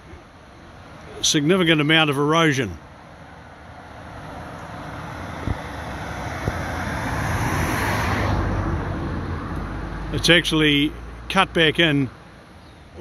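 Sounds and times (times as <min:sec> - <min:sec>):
vehicle passing with tyre noise: 0:02.9 - 0:13.0.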